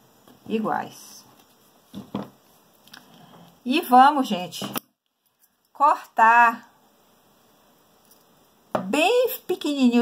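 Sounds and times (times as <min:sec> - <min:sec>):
woman speaking: 0:00.4 - 0:01.3, 0:03.6 - 0:04.8, 0:05.7 - 0:06.8, 0:08.8 - 0:10.0.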